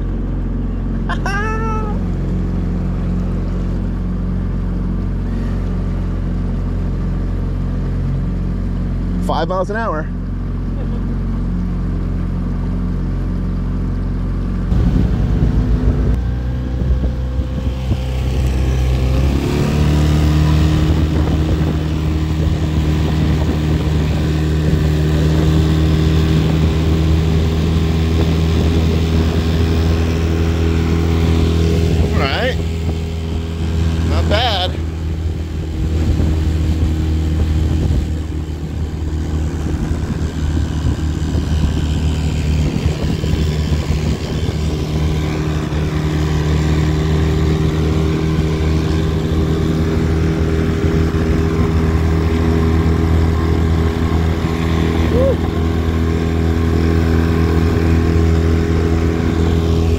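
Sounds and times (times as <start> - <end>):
outboard motor droning: 0.0 - 59.9
water rushing past hull: 11.4 - 59.9.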